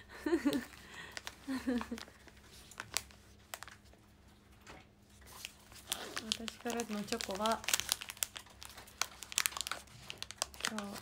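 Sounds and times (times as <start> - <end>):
plastic packaging crinkling: 0.3 - 4.1, 5.1 - 11.0.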